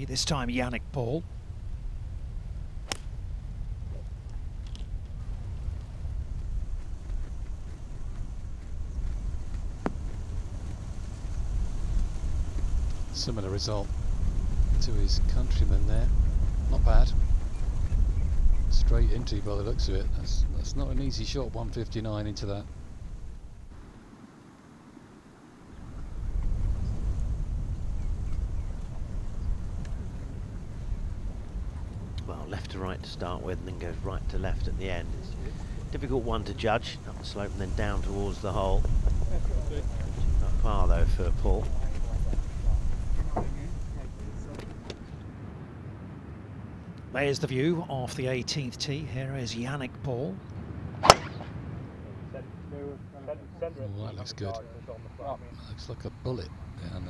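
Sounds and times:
wind rumble on microphone: 0.0 - 24.1, 25.6 - 47.2
golf club striking ball: 2.8 - 3.2, 51.0 - 51.5.

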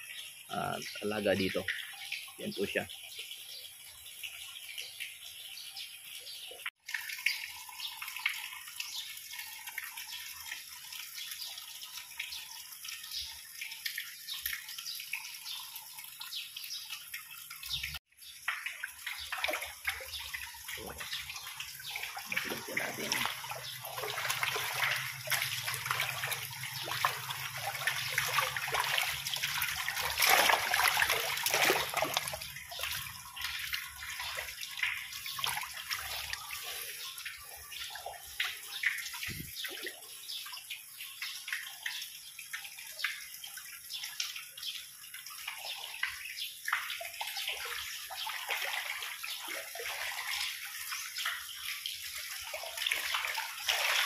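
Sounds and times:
fish splashing in pond: 18.4 - 40.2, 45.5 - 54.0.

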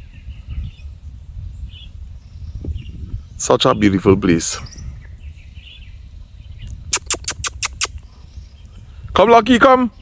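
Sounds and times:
wind rumble on microphone: 0.0 - 10.0
sharp clicks: 6.9 - 8.0.

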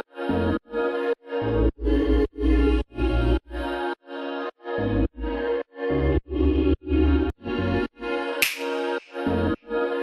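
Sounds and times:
sharp percussive hit: 8.4 - 9.2.

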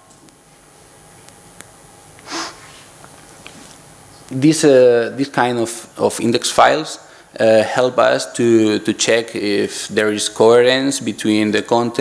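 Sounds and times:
person sniffing: 2.2 - 2.9.

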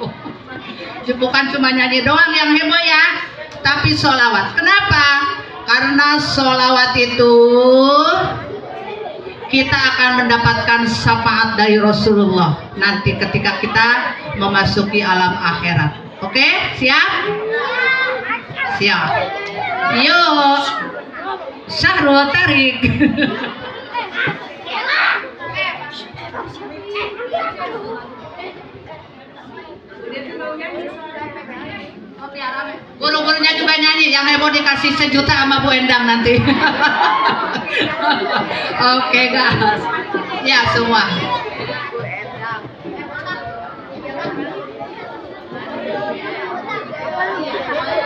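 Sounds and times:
crowd of children talking: 0.0 - 48.0.

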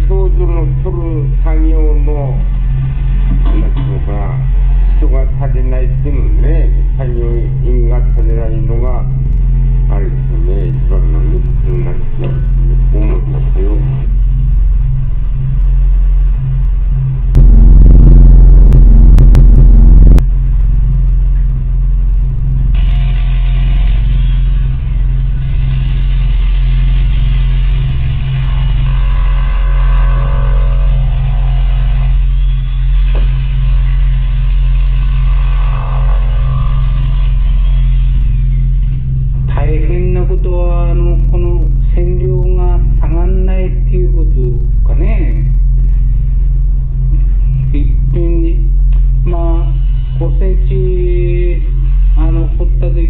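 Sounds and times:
music: 0.0 - 41.2.

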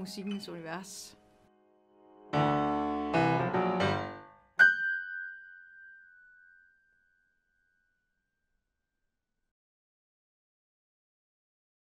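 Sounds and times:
high bell-like ringing note: 4.9 - 8.2.

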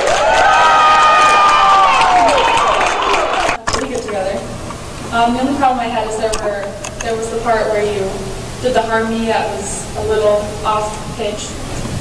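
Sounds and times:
audience applause and cheering: 0.0 - 3.6
voices: 3.6 - 11.6.

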